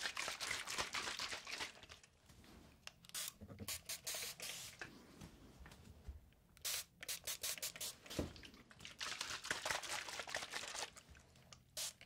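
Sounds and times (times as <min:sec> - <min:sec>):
spray bottle hiss: 0:03.1 - 0:04.8, 0:06.6 - 0:08.3, 0:11.8 - 0:12.0.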